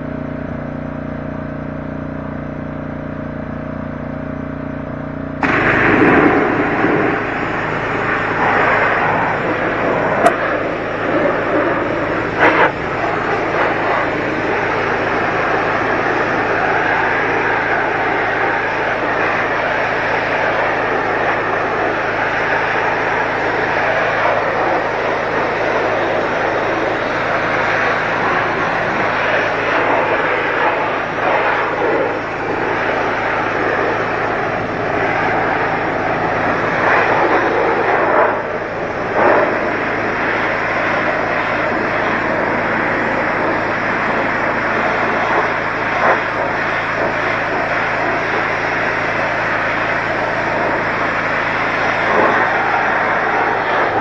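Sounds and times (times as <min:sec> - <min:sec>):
pressure washer motor hum: 0:00.0 - 0:54.0
water jet hissing on metal: 0:05.4 - 0:54.0.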